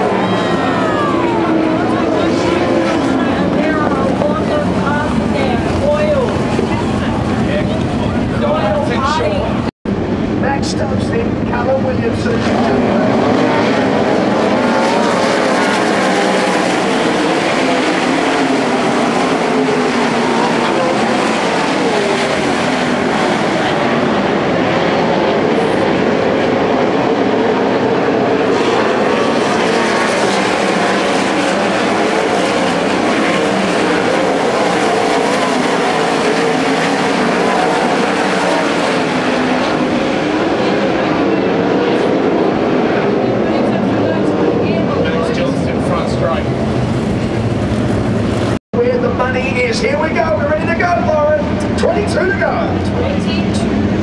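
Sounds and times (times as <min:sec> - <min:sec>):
racing car engines: 0:00.0 - 0:54.0.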